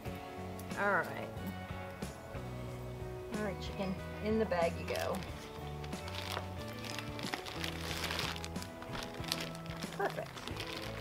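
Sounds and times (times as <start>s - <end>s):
background music with bass line: 0.0s - 11.0s
plastic bag crinkling: 4.8s - 11.0s.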